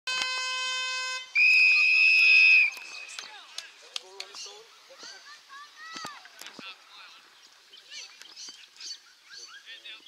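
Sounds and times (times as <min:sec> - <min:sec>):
steady horn tone: 0:00.1 - 0:01.4
long whistle blast: 0:00.1 - 0:02.9.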